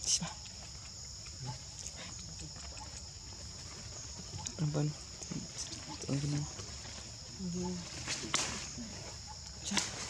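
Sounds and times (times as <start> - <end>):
insect drone: 0.0 - 10.0.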